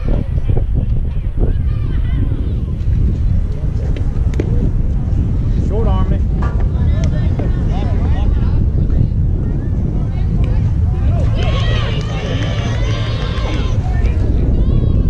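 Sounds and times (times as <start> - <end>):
wind buffeting microphone: 0.0 - 15.0
distant voices calling out: 3.4 - 15.0.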